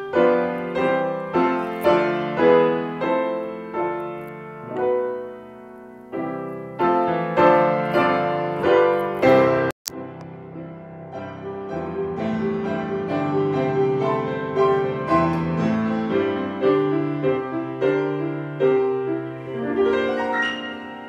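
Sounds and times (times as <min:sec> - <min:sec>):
grand piano playing hymns: 0:00.0 - 0:21.0.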